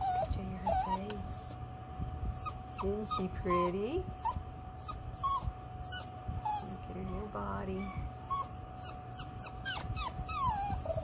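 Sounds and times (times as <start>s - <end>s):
dog whimpering: 0.0s - 1.6s, 2.3s - 11.0s.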